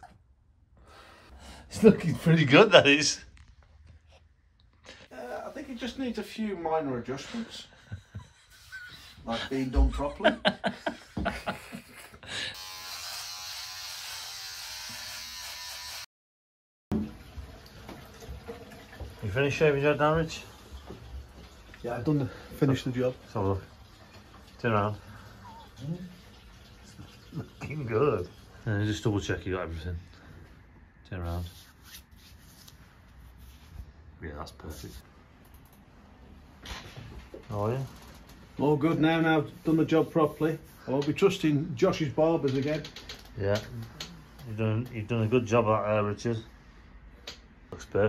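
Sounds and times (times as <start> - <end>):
electric shaver buzzing: 12.4 - 16.1.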